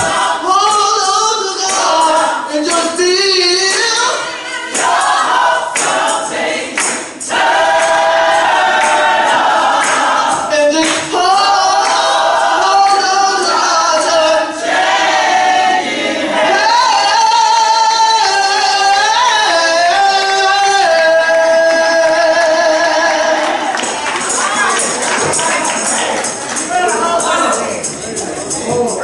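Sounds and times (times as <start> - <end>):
choir singing gospel in harmony: 0.0 - 28.5.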